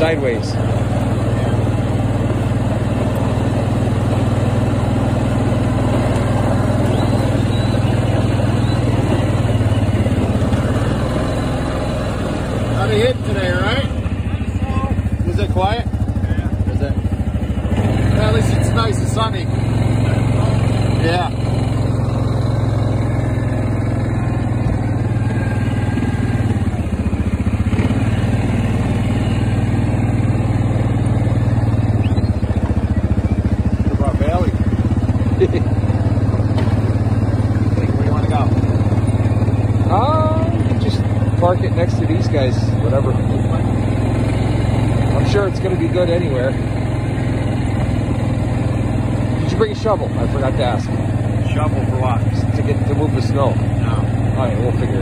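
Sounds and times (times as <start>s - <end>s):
snowmobile engine running: 0.0s - 55.0s.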